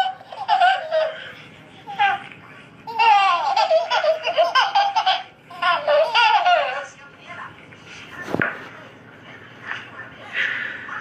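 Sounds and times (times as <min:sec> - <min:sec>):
baby laughing and squealing: 0:00.0 - 0:02.3, 0:02.9 - 0:06.8.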